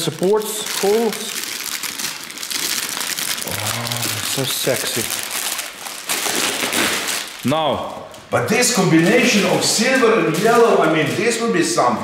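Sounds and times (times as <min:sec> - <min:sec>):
plastic wrapping crinkling: 0:00.0 - 0:12.0
person humming: 0:03.4 - 0:04.5.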